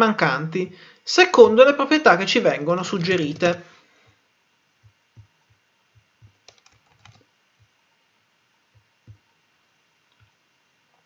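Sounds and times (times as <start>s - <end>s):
keyboard and mouse clicks: 6.2s - 7.2s.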